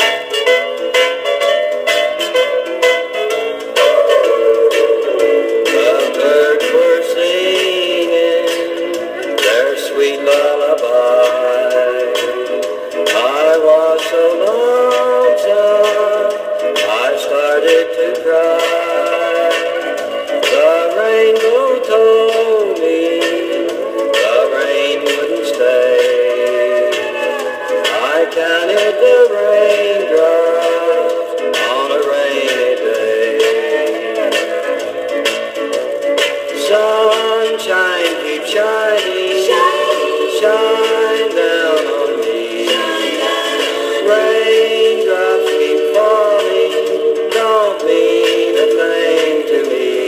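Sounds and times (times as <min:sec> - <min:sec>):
thin vinyl record music: 0:00.0 - 0:50.0.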